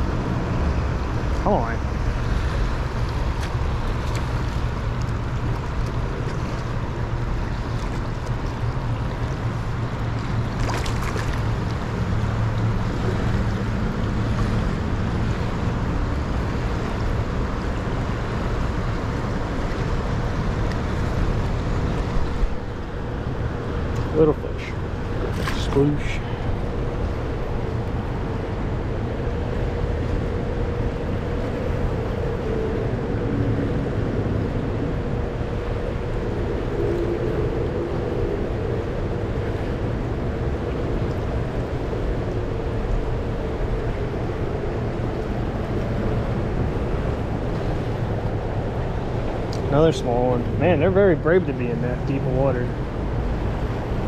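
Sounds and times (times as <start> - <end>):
river water flowing: 0.0 - 54.0
wind rumble: 0.0 - 54.0.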